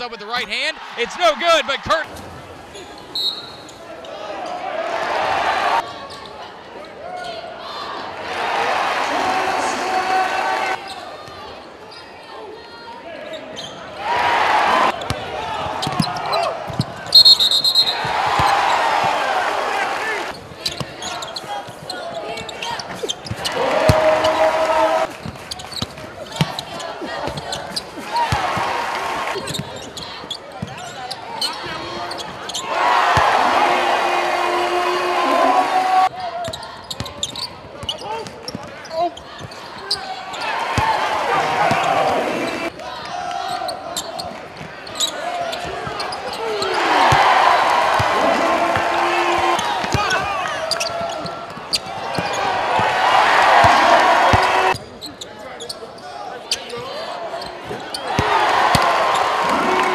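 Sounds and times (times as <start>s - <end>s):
crowd and player voices: 0.0s - 59.9s.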